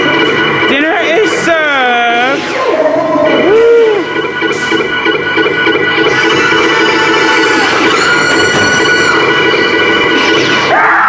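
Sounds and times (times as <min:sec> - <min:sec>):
eerie soundtrack music: 0:00.0 - 0:11.0
gliding voice-like wail: 0:02.4 - 0:04.2.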